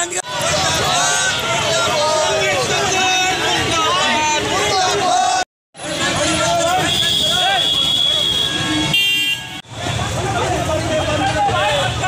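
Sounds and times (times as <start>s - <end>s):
crowd voices: 0.0s - 12.0s
traffic noise: 0.0s - 12.0s
vehicle horn toot: 6.8s - 9.6s.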